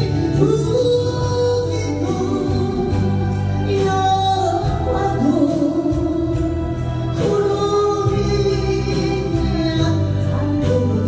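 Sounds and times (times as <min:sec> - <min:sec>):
woman singing into microphone: 0:00.0 - 0:11.0.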